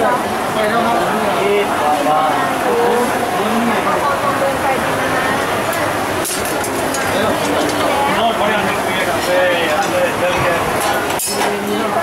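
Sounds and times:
steady background rush: 0.0s - 12.0s.

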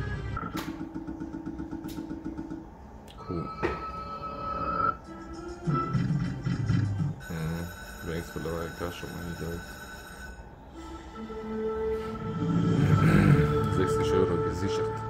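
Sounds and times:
looping slot machine music: 5.1s - 10.3s.

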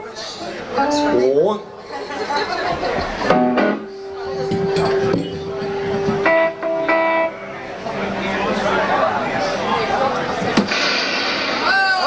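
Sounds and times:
people talking: 0.0s - 10.8s
electric guitar notes: 0.8s - 1.4s, 3.2s - 11.1s.

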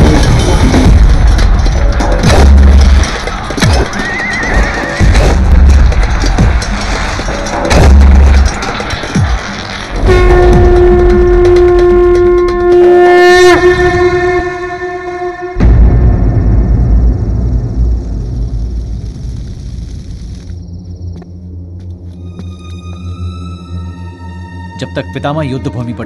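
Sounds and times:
long horn-like note: 10.0s - 16.2s
deep drum hits: 15.6s - 18.6s.

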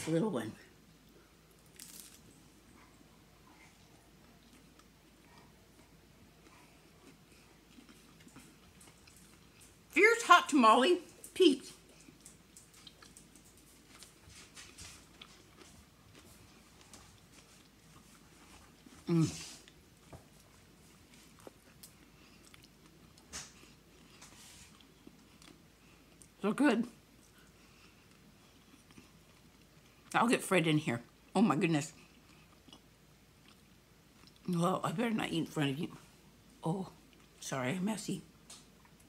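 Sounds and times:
faint chewing: 0.9s - 10.0s, 11.0s - 30.2s, 31.9s - 34.5s, 35.9s - 37.4s, 38.3s - 39.0s.

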